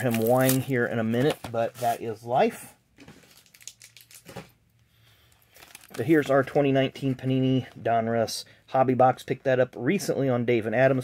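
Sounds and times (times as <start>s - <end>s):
cardboard box wrapper crinkling: 0.0s - 2.0s, 3.1s - 4.5s, 5.5s - 6.3s.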